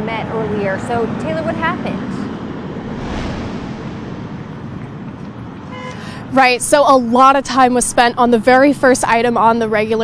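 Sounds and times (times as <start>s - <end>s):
vehicle passing: 2.3s - 5.6s.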